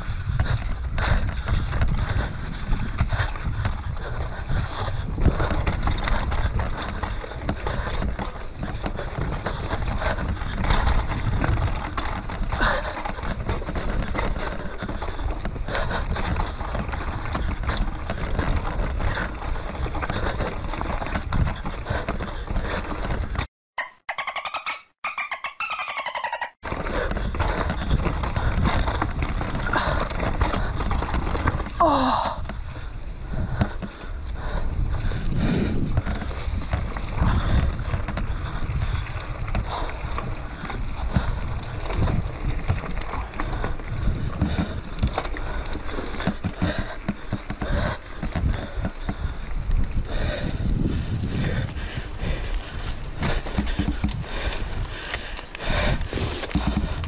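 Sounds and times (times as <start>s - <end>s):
wind on microphone: 0.0s - 23.4s, 26.7s - 57.0s
bike clattering and rattling: 0.0s - 23.5s, 25.8s - 57.0s
tyres rumbling over dirt: 0.0s - 23.5s, 26.6s - 57.0s.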